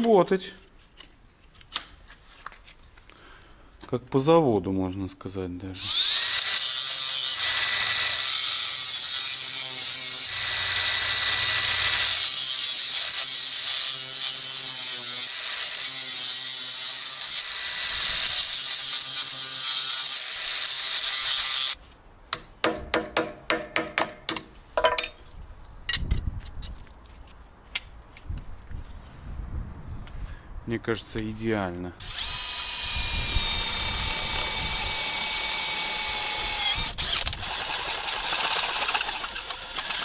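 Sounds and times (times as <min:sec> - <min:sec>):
angle grinder whining: 0:05.8 - 0:21.8, 0:32.0 - 0:40.0.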